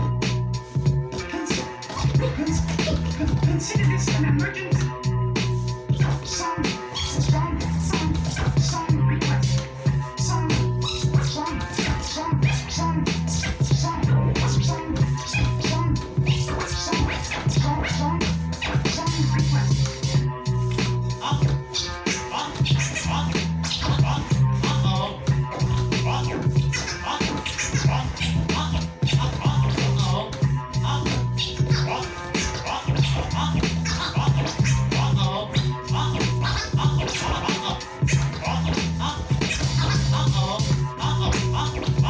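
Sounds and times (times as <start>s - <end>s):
beat with pulsing bass line: 0.0s - 42.0s
vinyl record scratching: 0.0s - 42.0s.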